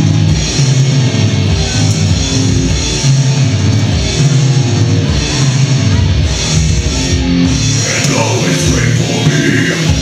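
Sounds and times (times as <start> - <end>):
bass guitar: 0.0 - 10.0
drum kit: 0.0 - 10.0
electric guitar: 0.0 - 10.0.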